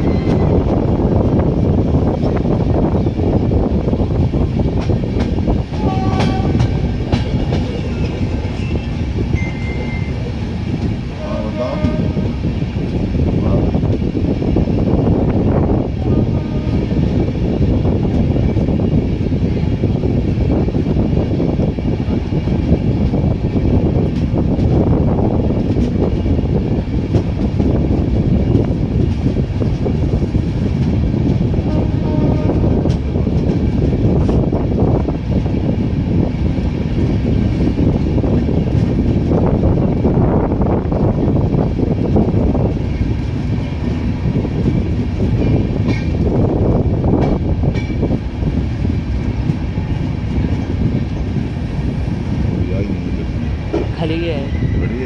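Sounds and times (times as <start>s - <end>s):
train wheels rumbling on track: 0.0s - 55.0s.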